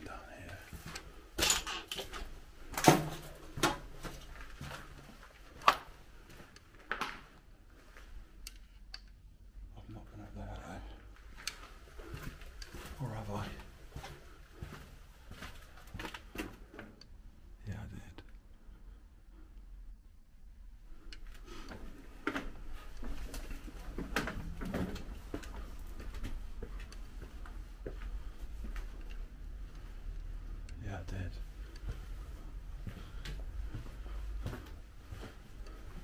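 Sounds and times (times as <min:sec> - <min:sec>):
footsteps on littered floor: 0:02.0 - 0:08.2, 0:11.2 - 0:16.8, 0:31.4 - 0:36.0.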